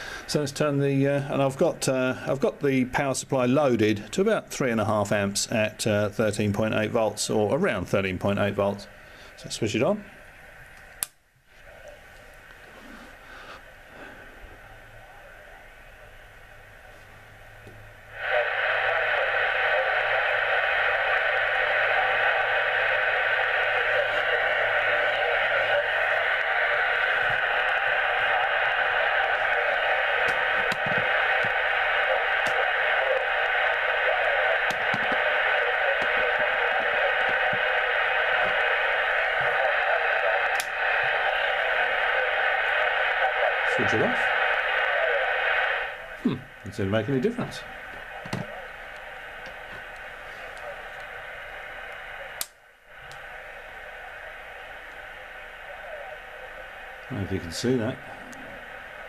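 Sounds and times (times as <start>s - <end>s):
radio static rush: 0.0s - 10.7s, 11.5s - 59.0s.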